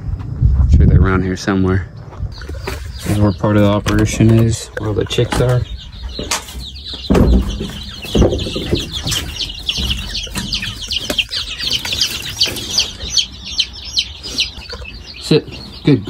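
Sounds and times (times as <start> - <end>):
chicks peeping: 0.5 - 16.0
low thumps: 2.1 - 13.8.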